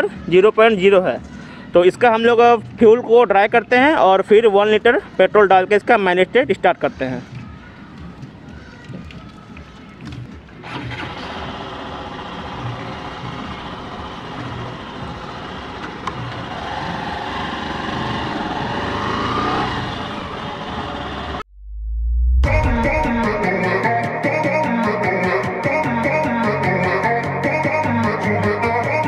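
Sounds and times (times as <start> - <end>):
wind and road noise: 4.8 - 21.4
motorcycle engine running: 10.6 - 21.4.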